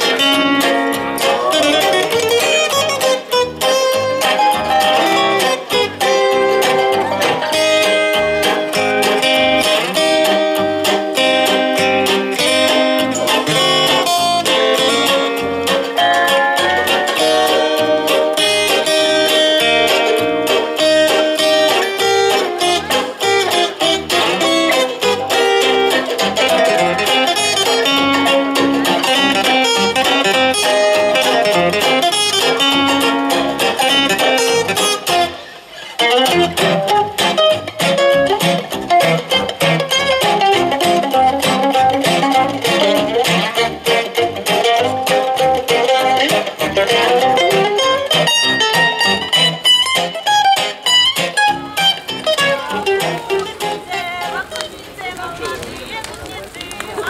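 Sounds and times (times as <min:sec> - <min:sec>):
guitar music: 0:00.0 - 0:57.0.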